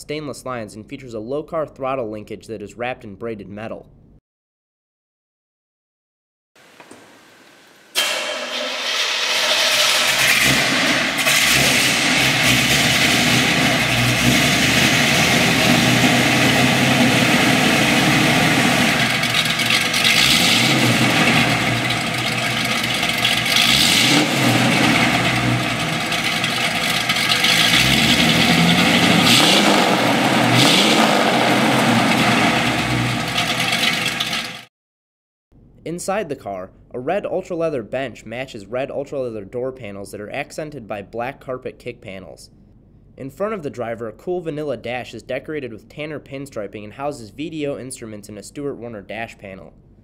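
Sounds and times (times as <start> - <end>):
hot rod engine starting and revving: 7.9 - 34.7.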